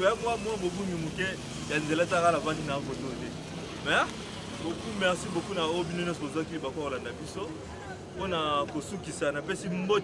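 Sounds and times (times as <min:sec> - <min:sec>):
man talking into a microphone: 0:00.0 - 0:10.0.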